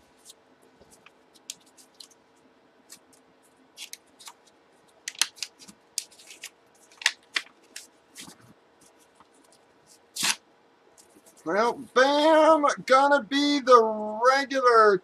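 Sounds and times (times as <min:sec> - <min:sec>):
paper envelope rustling: 0:00.0 - 0:02.2, 0:03.8 - 0:10.4.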